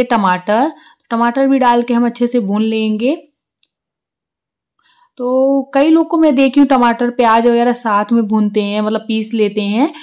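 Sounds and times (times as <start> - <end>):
woman speaking: 0.0 - 3.4, 5.2 - 10.0
faint breath: 0.8 - 1.1, 4.8 - 5.2.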